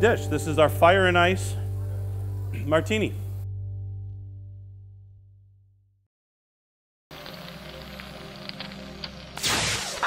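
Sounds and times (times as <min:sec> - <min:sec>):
low musical drone: 0:00.0 - 0:05.5
fire-like crackling: 0:07.1 - 0:10.0.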